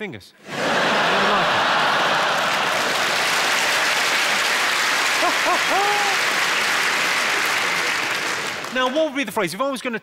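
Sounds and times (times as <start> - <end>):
audience laughing: 0.4 - 8.6
audience applauding: 0.6 - 9.3.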